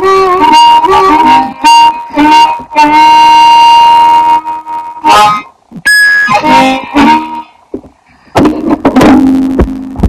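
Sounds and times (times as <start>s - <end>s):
blues harmonica playing: 0.0s - 7.6s.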